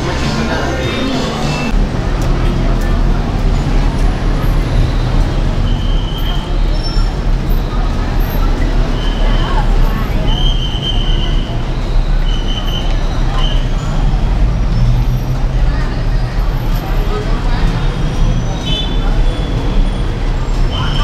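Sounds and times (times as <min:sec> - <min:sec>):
pedestrians chattering: 0:00.0 - 0:21.0
road traffic rumble: 0:00.0 - 0:21.0.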